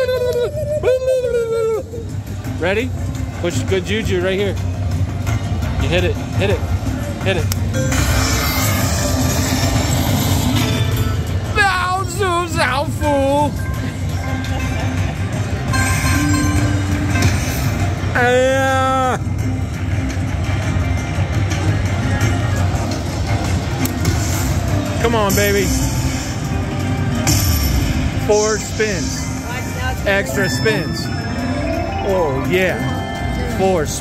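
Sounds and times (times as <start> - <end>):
low background din: 0.0 - 34.0
casino background noise: 2.2 - 34.0
slot machine electronic music: 2.2 - 34.0.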